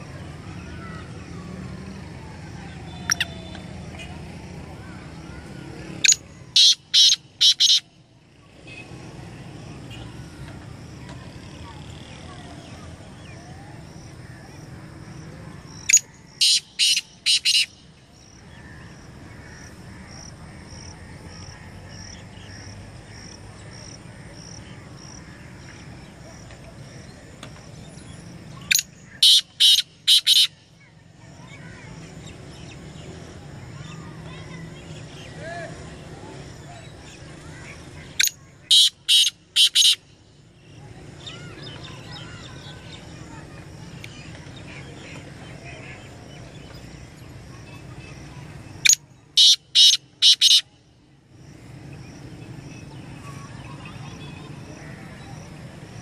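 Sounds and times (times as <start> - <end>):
francolin calling: 2.9 - 4.1, 6.0 - 7.9, 15.7 - 20.2, 28.5 - 30.6, 38.2 - 40.2, 48.8 - 50.8
faint small bird chirps: 2.9 - 4.2.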